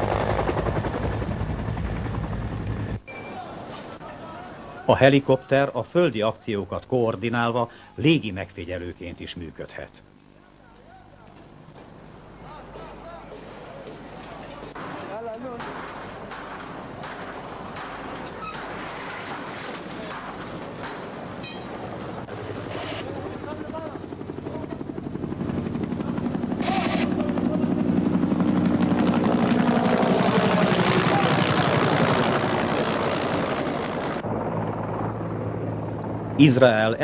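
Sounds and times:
helicopter rotor beat: 0:00.0 - 0:03.0, 0:19.9 - 0:37.0.

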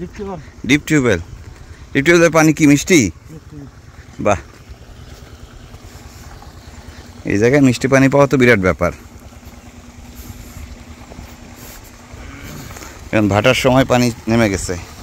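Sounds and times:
man speaking or humming: 0:12.2 - 0:14.9.

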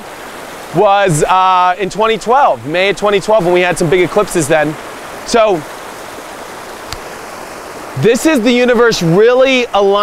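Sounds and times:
flowing river water: 0:00.0 - 0:10.0
faint click: 0:06.9 - 0:07.1.

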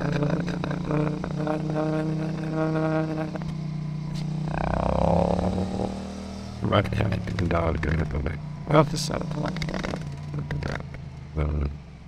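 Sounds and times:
held vowel-like tone: 0:00.0 - 0:03.5
warped voice-like engine drone: 0:00.0 - 0:11.8.

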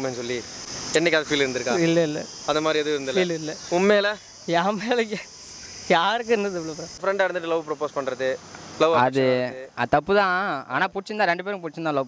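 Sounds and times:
person speaking: 0:00.0 - 0:08.2
insects chirring: 0:00.0 - 0:12.0.

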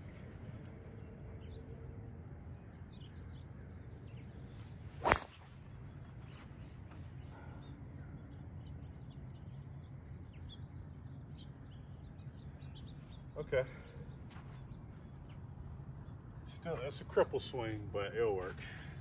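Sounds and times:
low outdoor hum: 0:00.0 - 0:19.0
golf driver striking ball: 0:05.0 - 0:05.4.

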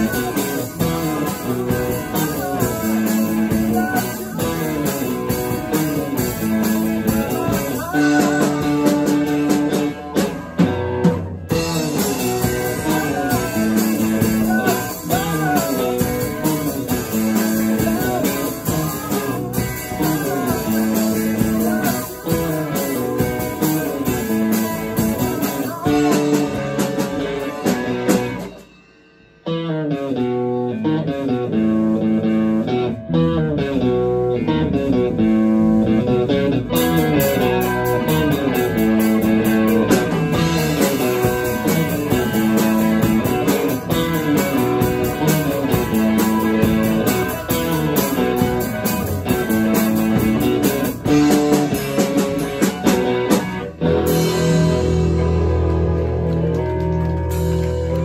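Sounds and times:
electric guitars: 0:00.0 - 0:28.8, 0:29.4 - 0:58.0
rock band playing: 0:00.0 - 0:58.0.

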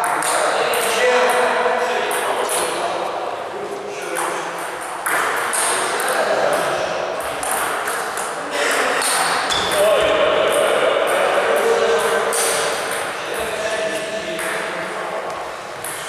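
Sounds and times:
table tennis balls clicking: 0:04.1 - 0:08.4
background voices: 0:08.4 - 0:16.0.

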